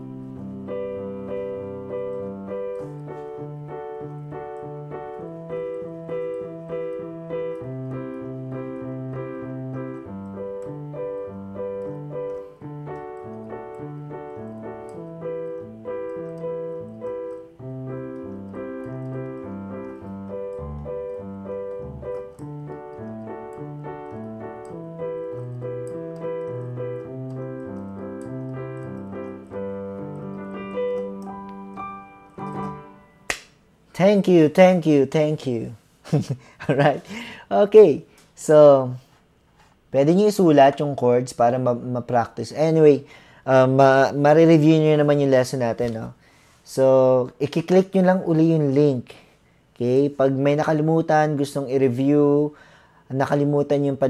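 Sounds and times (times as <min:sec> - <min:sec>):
digital piano chords and bass line: 0:00.0 - 0:33.4.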